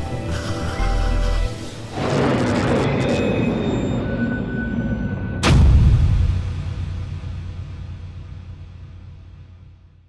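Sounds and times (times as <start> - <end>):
deep cinematic boom: 5.2 - 10.0.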